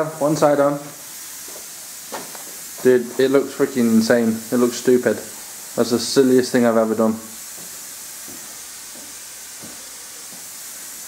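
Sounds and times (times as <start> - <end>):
steady background hiss: 0.0 - 11.0
man's voice: 2.8 - 7.3.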